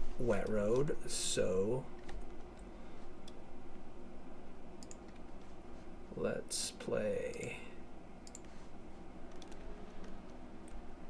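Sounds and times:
low background hum: 0.0s - 11.0s
computer mouse clicks: 4.8s - 5.4s, 8.2s - 8.6s, 9.3s - 10.8s.

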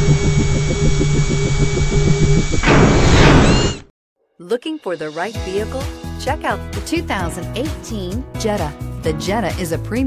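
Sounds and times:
mechanical whirring with ratcheting: 0.0s - 3.8s.

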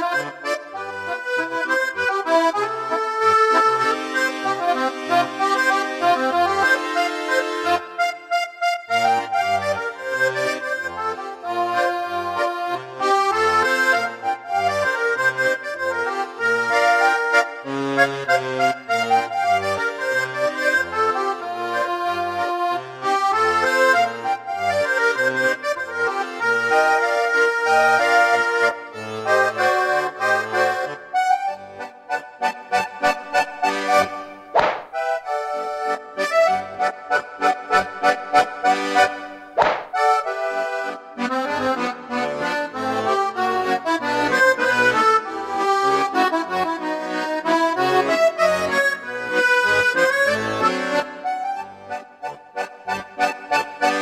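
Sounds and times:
accordion playing lively melody: 0.0s - 54.0s
sharp cracks: 34.5s - 35.2s, 39.6s - 40.2s.

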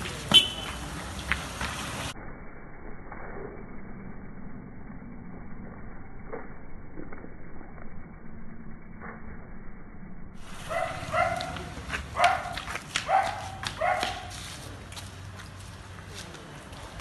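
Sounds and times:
faint street noise: 0.0s - 9.6s, 10.3s - 17.0s
dog barking: 10.6s - 14.4s.

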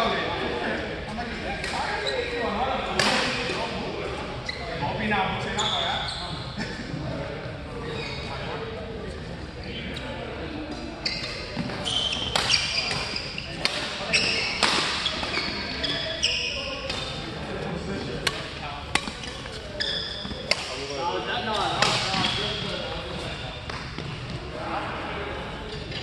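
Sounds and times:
shoes squeaking on court floor: 1.6s - 2.4s, 4.1s - 6.6s, 7.7s - 24.6s.

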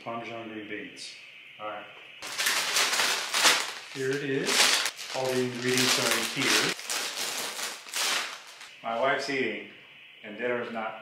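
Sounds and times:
plastic bag crinkling: 2.2s - 8.7s.

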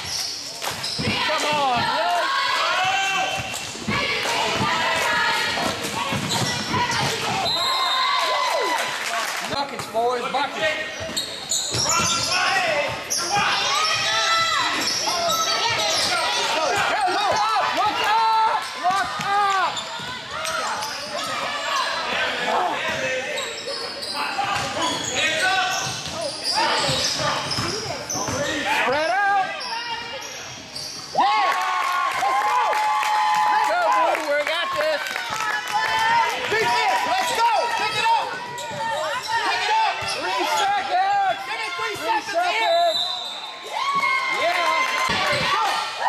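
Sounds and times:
sneakers squeaking: 0.0s - 8.2s, 9.8s - 17.7s, 18.5s - 31.2s, 36.6s - 44.2s.

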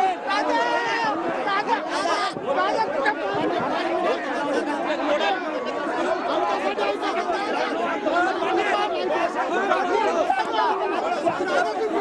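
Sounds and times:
men talking and shouting: 0.0s - 12.0s.

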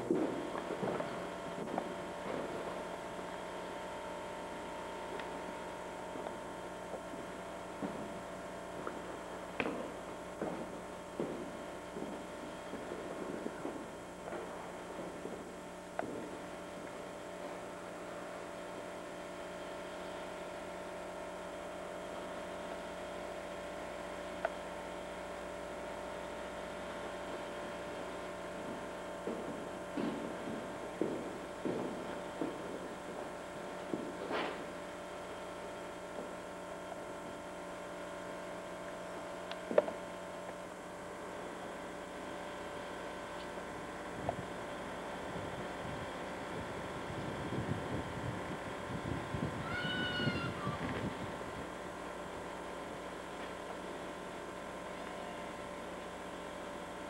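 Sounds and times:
steady electrical hum: 0.0s - 57.0s.

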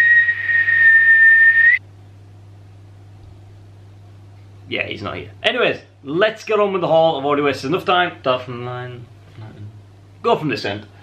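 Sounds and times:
man whistling: 0.0s - 1.8s.

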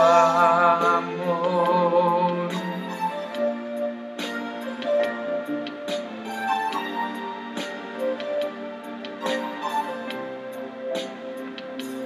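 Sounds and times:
slow ballad backing track: 0.0s - 12.0s.

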